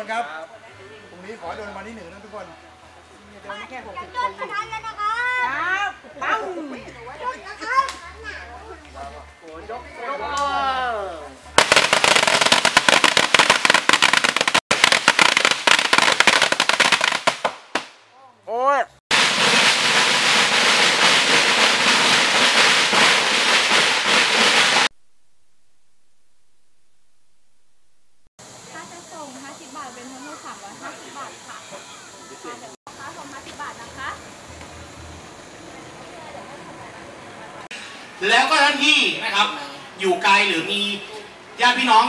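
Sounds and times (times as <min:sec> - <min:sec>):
firecracker bang: 0:11.6 - 0:18.0, 0:19.1 - 0:24.9.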